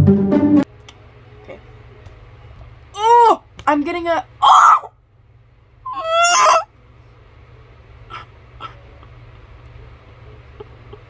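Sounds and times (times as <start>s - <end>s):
woman squealing: 4.4s - 4.9s, 5.9s - 6.7s, 8.1s - 8.8s.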